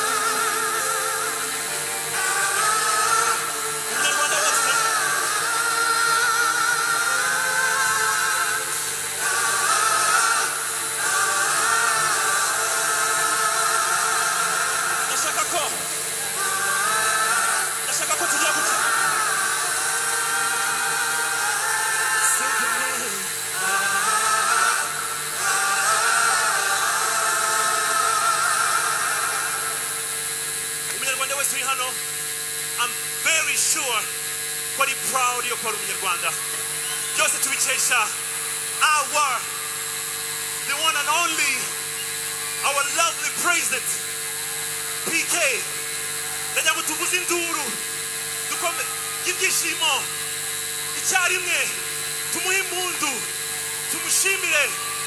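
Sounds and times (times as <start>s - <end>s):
choir singing: 0.0s - 30.0s
electrical hum: 0.0s - 55.0s
man talking into a microphone: 45.1s - 45.7s, 46.6s - 47.8s, 51.0s - 51.8s, 52.4s - 53.2s, 53.9s - 54.8s.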